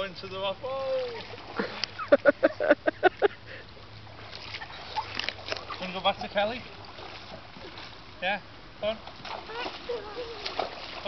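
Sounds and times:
paddle splashing water: 0.6 - 11.0.

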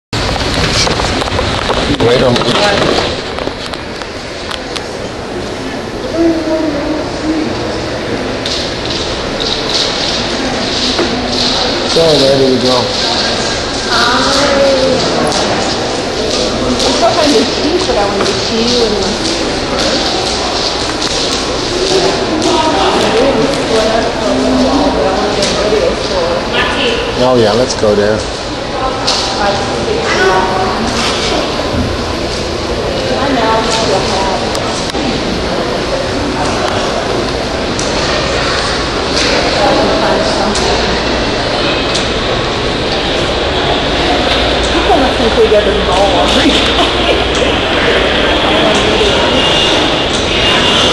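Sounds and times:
indoor background hum: 0.2 - 50.9
people talking indistinctly: 4.5 - 50.9.

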